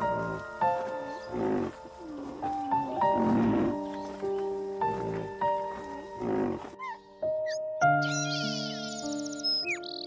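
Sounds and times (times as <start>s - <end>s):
held keyboard notes: 0.0s - 7.0s.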